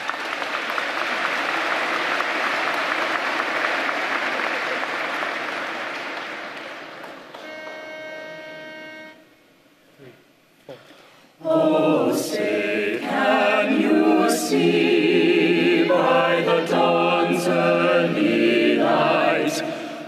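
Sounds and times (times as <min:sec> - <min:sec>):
audience applauding: 0:00.0 - 0:07.8
steady pitched note: 0:07.4 - 0:09.4.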